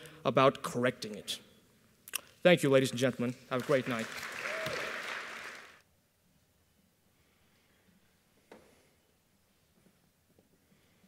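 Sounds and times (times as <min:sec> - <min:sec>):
audience applause: 0:03.5 - 0:05.8.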